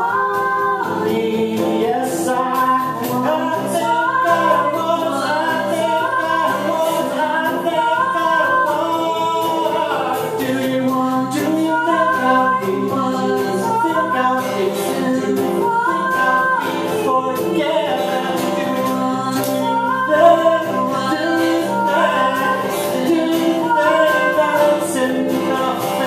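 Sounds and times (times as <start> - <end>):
acoustic guitar: 0.0 - 26.0
woman and man singing harmony: 0.0 - 26.0.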